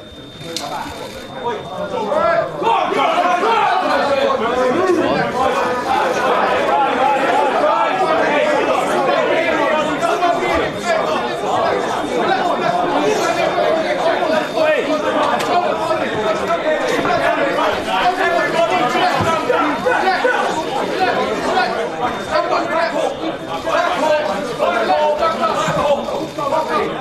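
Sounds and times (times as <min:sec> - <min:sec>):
crowd chatter: 0:00.0 - 0:27.0.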